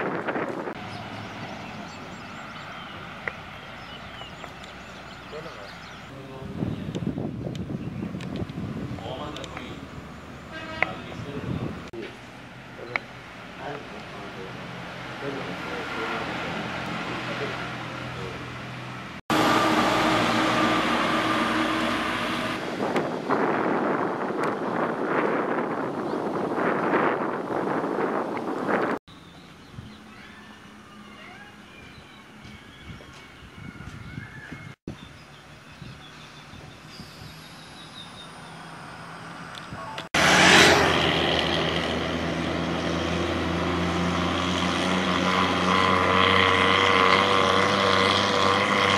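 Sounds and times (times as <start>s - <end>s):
wind buffeting microphone: 0.0s - 12.0s, 21.3s - 29.0s, 31.8s - 38.0s
heavy lorry approaching: 0.1s - 6.4s, 8.7s - 23.3s, 36.2s - 48.9s
car approaching: 0.1s - 24.4s, 35.2s - 48.9s
faint outdoor ambience: 29.0s - 48.9s.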